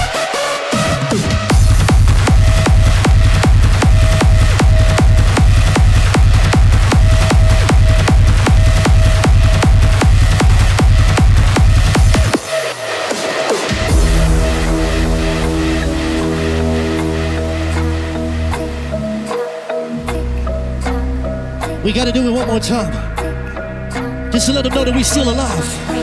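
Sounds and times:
hardstyle dance music: 0.0 - 26.0
distorted kick drum: 0.9 - 18.0.

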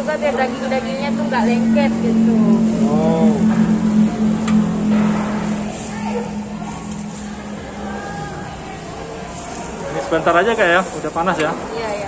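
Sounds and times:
low hum: 0.0 - 9.9
faint voices chattering: 0.0 - 12.0.

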